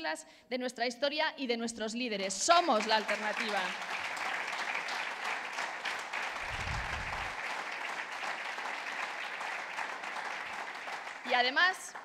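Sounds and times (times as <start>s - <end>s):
audience applauding: 2.5s - 12.0s.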